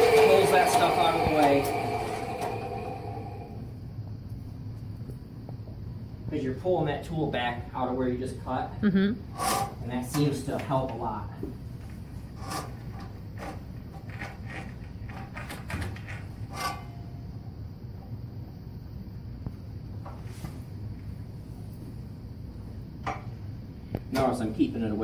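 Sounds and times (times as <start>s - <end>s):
sewer snake motor humming: 0.0s - 3.7s.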